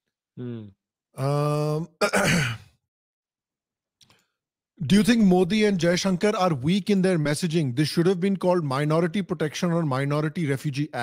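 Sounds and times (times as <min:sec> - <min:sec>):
man sighing: 0:00.4 - 0:02.0.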